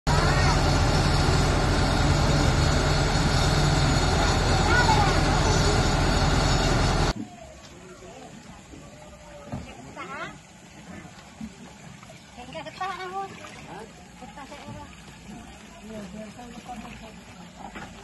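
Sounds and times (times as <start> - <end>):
truck mechanical hum: 0.1 - 7.2
faint voices: 7.1 - 11.1.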